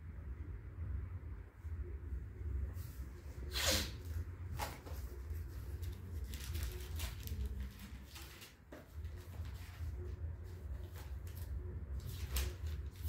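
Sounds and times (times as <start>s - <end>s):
rustling handling noises: 4.1s - 13.0s.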